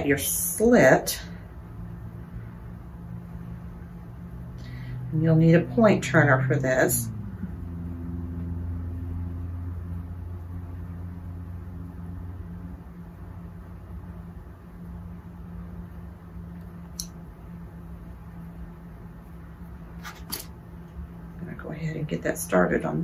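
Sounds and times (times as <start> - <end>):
low machine hum: 0.0 - 23.0.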